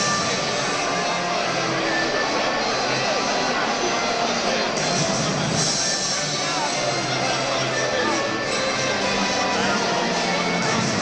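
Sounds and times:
hubbub of football crowd: 0:00.0 - 0:11.0.

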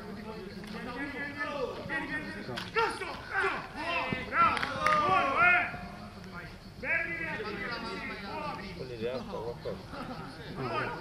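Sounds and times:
men calling out and talking: 0:00.0 - 0:11.0.

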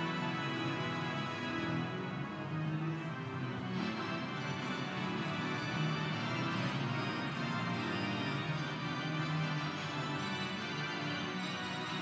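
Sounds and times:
organ playing chords: 0:00.0 - 0:12.0.

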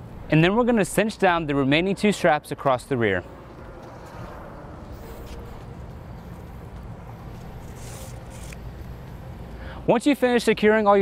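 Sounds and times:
low outdoor rumble: 0:00.0 - 0:09.9
strap scraping through buckle: 0:03.7 - 0:05.8, 0:07.2 - 0:08.9.

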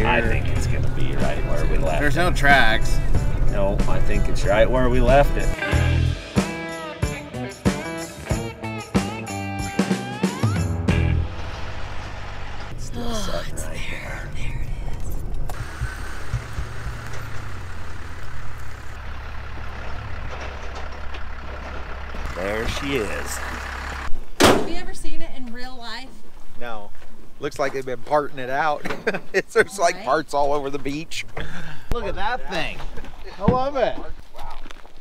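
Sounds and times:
people talking: 0:00.0 - 0:05.6, 0:12.8 - 0:15.2, 0:22.3 - 0:23.6, 0:24.7 - 0:31.3, 0:31.9 - 0:34.6
background music: 0:00.0 - 0:11.4
truck engine rumbling: 0:00.0 - 0:26.0.

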